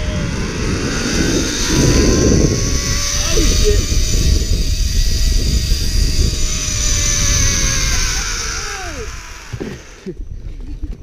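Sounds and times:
pulleys whining on steel cable: 0.0 - 10.2
wind buffeting microphone: 0.0 - 11.0.

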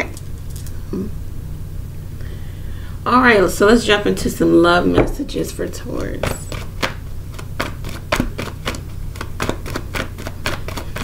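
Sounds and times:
low steady hum: 0.0 - 11.0
cards being shuffled: 6.0 - 11.0.

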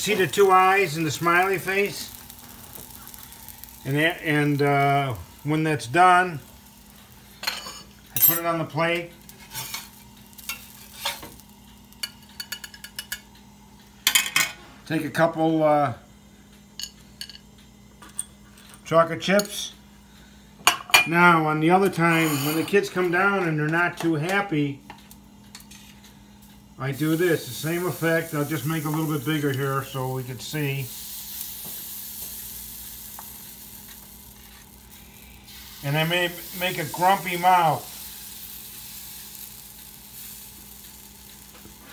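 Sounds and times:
batter sizzling on a griddle: 0.0 - 13.1, 25.7 - 41.9.

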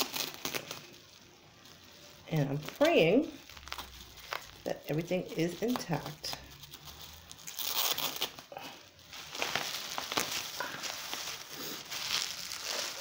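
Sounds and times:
bubble wrap crinkling and crackling: 0.0 - 13.0.

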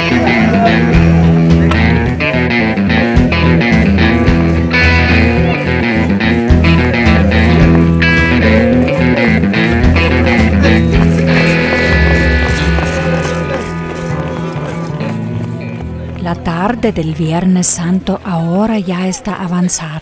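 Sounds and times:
background music with guitar: 0.0 - 17.8.

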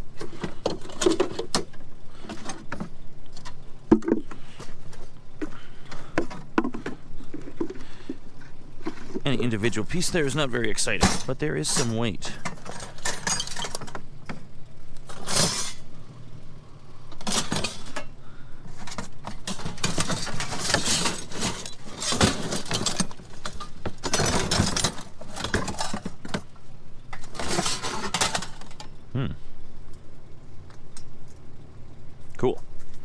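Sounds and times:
scrap steel clattering: 6.0 - 14.0, 15.1 - 15.9, 17.2 - 28.9.

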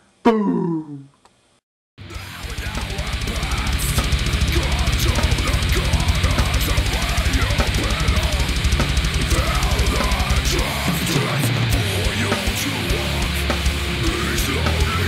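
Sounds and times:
fast kick drum: 2.0 - 15.0
heavy metal band playing: 2.0 - 15.0.

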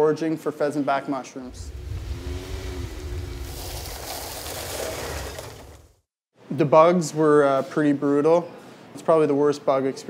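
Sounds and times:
wind and tyre hiss: 1.5 - 6.0
road and engine rumble: 1.5 - 6.1.

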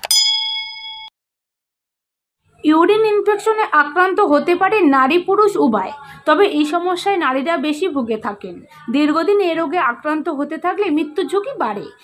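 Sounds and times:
notification bell ding: 0.0 - 1.1.

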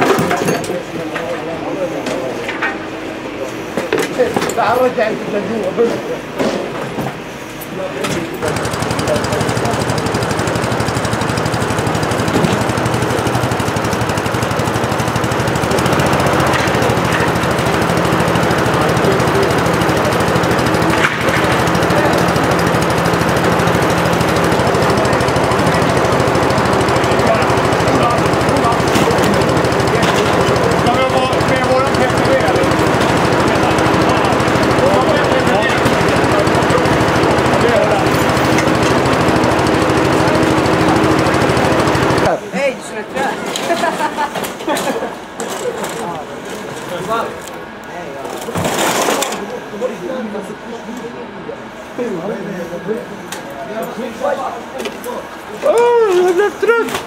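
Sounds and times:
faint voices talking: 0.0 - 57.0
small engine running: 7.9 - 47.6.

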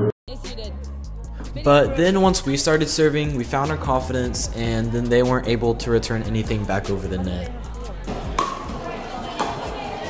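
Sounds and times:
murmur of voices: 0.6 - 10.0
paddles hitting pickleball: 8.1 - 9.8.

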